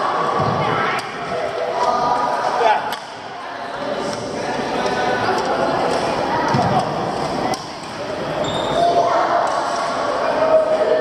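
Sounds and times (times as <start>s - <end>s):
many voices echoing: 0.0s - 11.0s.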